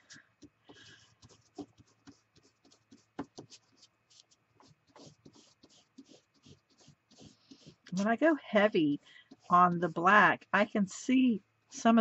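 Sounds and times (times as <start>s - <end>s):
foam tool dabbing on cardstock: 0.4s - 10.8s.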